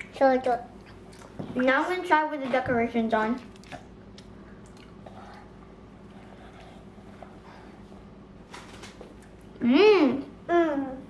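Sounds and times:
faint chewing: 0:03.3 - 0:07.6.

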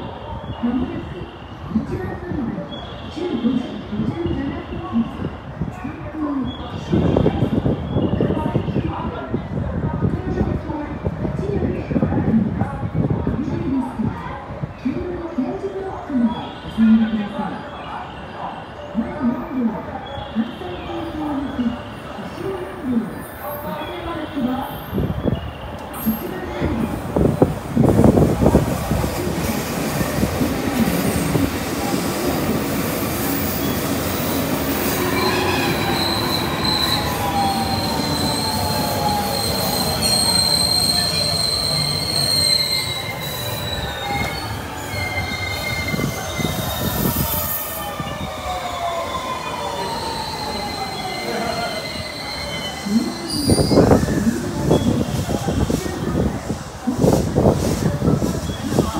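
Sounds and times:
train wheels rumbling on rails: 0:24.9 - 0:58.9
high brake squeal: 0:33.2 - 0:56.2.

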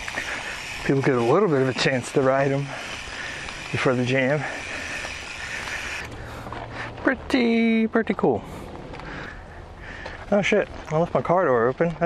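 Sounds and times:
bike tyres rolling on dirt: 0:00.0 - 0:12.0.

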